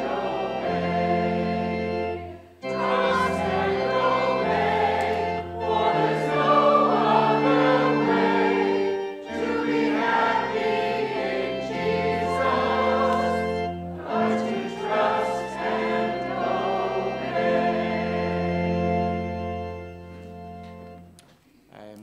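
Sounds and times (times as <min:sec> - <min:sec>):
congregation singing a hymn: 0:00.0 - 0:21.1
organ accompaniment: 0:00.0 - 0:21.3.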